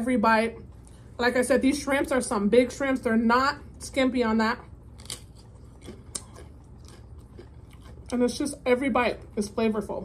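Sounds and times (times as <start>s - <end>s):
crisp food chewing crackles: 4.9s - 8.4s.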